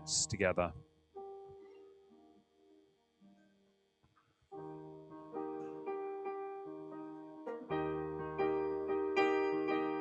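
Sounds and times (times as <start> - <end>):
soft piano chords on keyboard: 0.0 - 3.0, 4.5 - 10.0.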